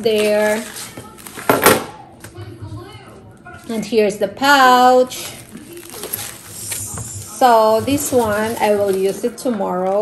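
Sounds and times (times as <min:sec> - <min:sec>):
packaging rustling: 0:05.2 - 0:09.5.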